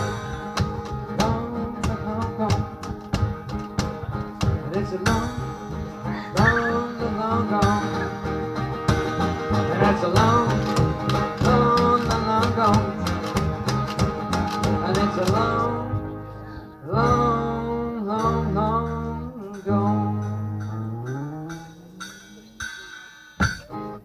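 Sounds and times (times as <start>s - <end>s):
skiffle group playing: 0.0s - 24.0s.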